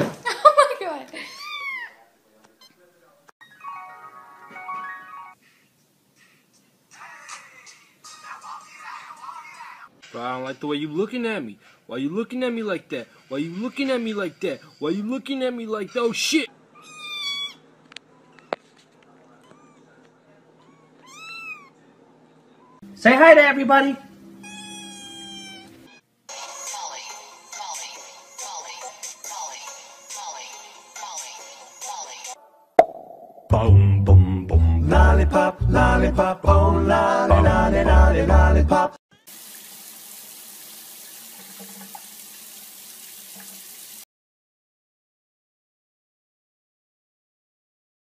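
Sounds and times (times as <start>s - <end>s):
kittens meowing: 1.2s - 2.0s, 16.7s - 18.6s, 19.4s - 21.8s, 24.4s - 26.0s
water running from bathtub tap: 39.3s - 44.0s.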